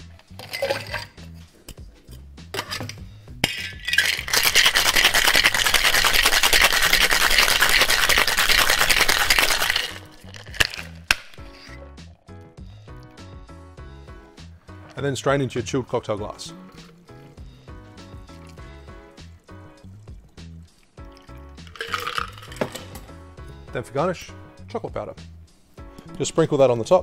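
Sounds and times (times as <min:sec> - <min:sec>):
cocktail shaker rattling with ice: 0:00.4 - 0:01.2, 0:03.4 - 0:11.2, 0:21.2 - 0:22.9
ice clinking into glass: 0:00.4 - 0:01.2, 0:03.4 - 0:11.0, 0:21.7 - 0:22.9.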